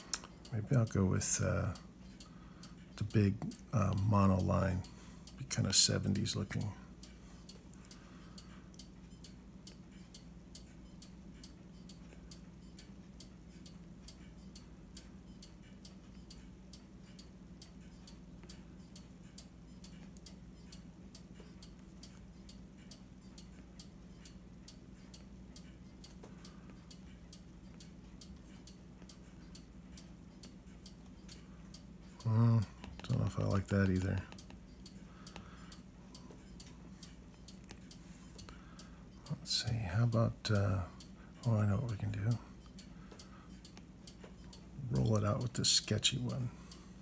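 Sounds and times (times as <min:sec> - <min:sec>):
faint regular ticking: 0:00.0 - 0:47.0
low steady hum: 0:00.0 - 0:47.0.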